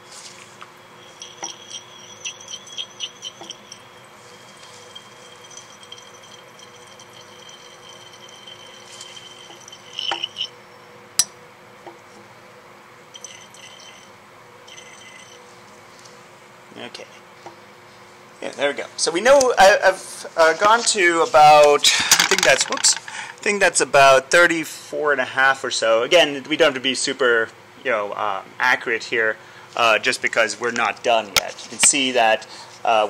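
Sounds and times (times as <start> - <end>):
thin steady ringing tone: 0.0 - 11.6, 13.0 - 16.1
liquid running into glass flask: 0.6 - 10.7, 13.1 - 15.4.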